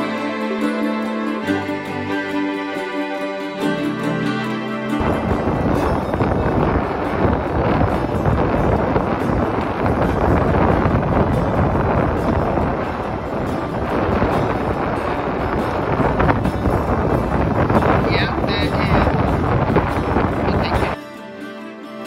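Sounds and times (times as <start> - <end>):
wind buffeting microphone: 3.5 - 21.0.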